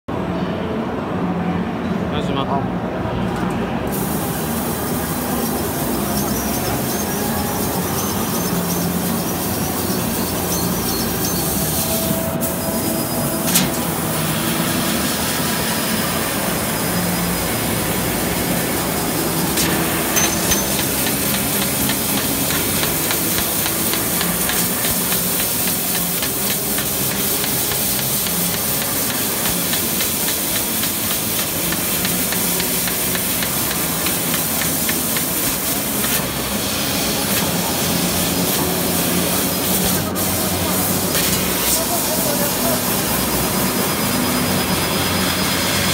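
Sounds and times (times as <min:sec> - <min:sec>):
laser cutter hissing: 0:03.9 - 0:45.9.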